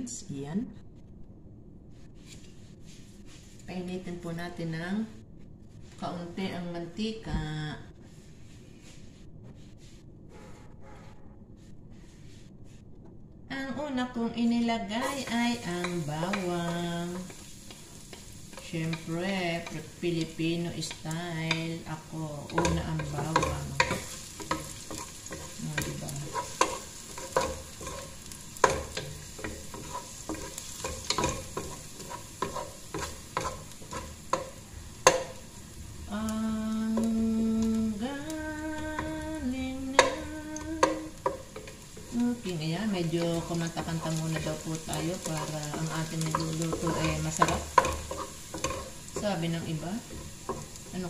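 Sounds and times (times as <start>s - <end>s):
garlic sizzling in oil: 14.7s - 51.0s
wooden spoon scraping pot: 15.0s - 35.5s, 38.8s - 51.0s
person humming: 36.1s - 41.2s.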